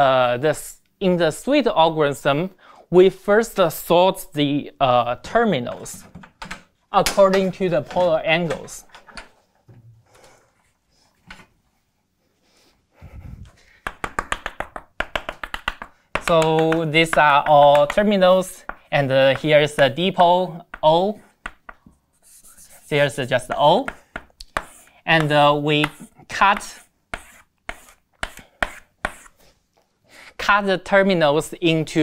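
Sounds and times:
chalk tapping on blackboard: 0:13.8 - 0:20.0, 0:20.7 - 0:29.4.

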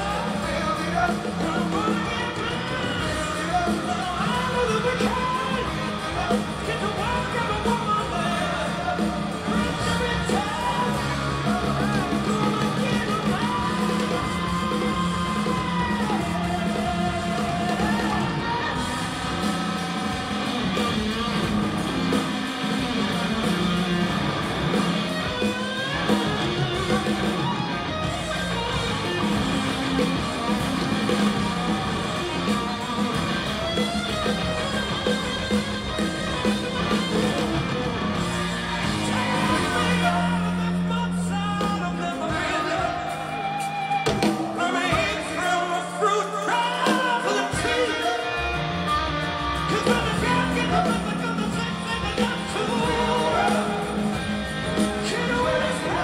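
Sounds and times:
man singing: 0:00.0 - 0:20.8, 0:38.8 - 0:48.6, 0:49.6 - 0:56.0
drums: 0:00.0 - 0:56.0
electric guitar: 0:00.0 - 0:56.0.

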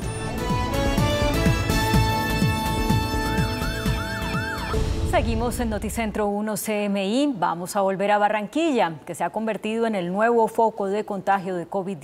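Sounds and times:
news bumper music: 0:00.0 - 0:06.3
siren-like wail: 0:03.5 - 0:04.8.

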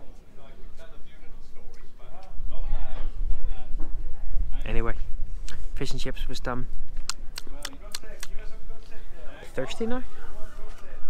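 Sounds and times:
man speaking: 0:07.4 - 0:11.0.

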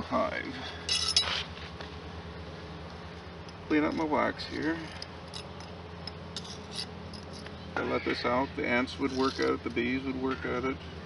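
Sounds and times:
metallic scrape and clink: 0:00.9 - 0:01.4, 0:03.8 - 0:07.5, 0:09.0 - 0:09.6.

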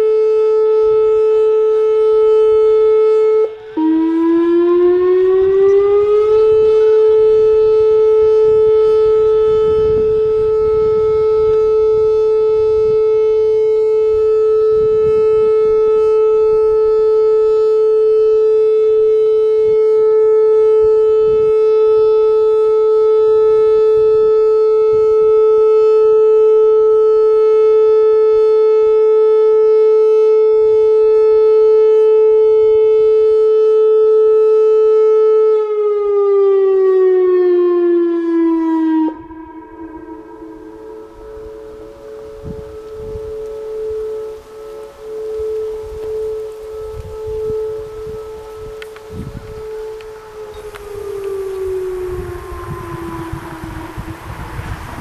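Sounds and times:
warning siren steady tone: 0:00.0 - 0:55.0.

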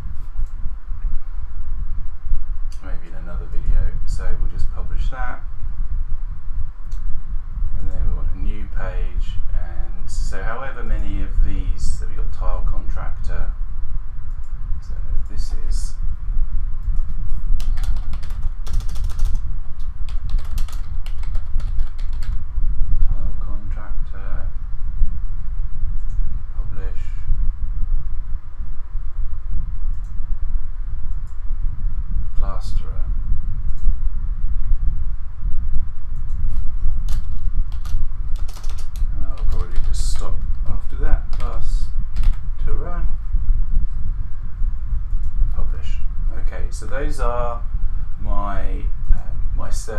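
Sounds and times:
steady low hum: 0:00.0 - 0:49.9
computer keyboard typing: 0:17.0 - 0:22.4, 0:36.3 - 0:40.6, 0:41.3 - 0:41.6, 0:42.2 - 0:42.4.

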